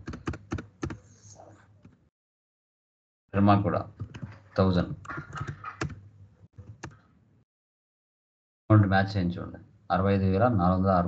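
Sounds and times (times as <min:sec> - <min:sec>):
keyboard keystrokes: 0:00.0 - 0:01.0.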